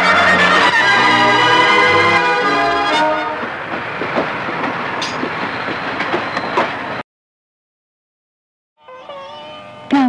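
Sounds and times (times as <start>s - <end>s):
sharp clacks: 3.7s - 6.8s.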